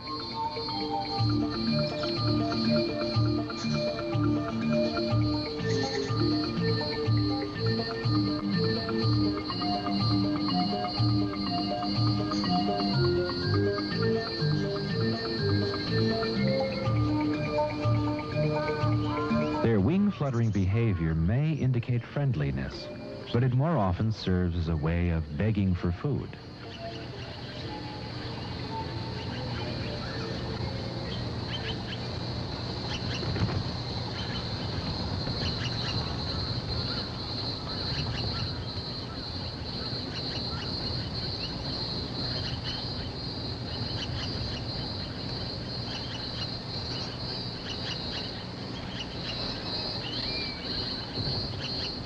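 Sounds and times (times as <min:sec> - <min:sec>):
magpies giving harsh calls: 0:00.0 - 0:21.5, 0:26.4 - 0:52.0
high pulsing buzz: 0:00.0 - 0:25.6.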